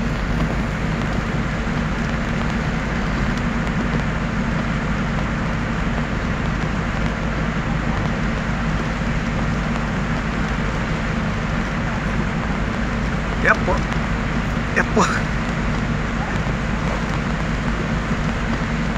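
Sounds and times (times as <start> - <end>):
tyres on slushy road: 0.0 - 18.9
vehicle engine drone: 0.0 - 18.9.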